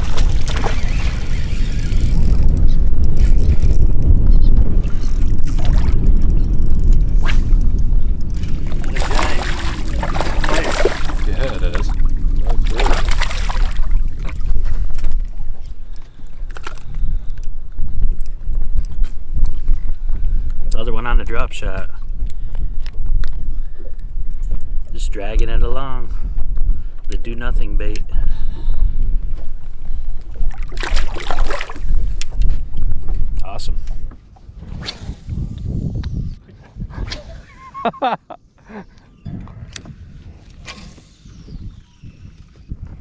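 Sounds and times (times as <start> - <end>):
steady low rumble: 0.0 - 15.9
fish thrashing and splashing in water: 8.6 - 14.4, 30.5 - 31.9.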